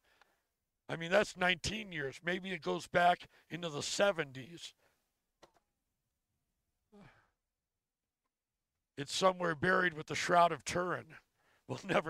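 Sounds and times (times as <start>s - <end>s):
faint sigh: 6.9s - 7.4s.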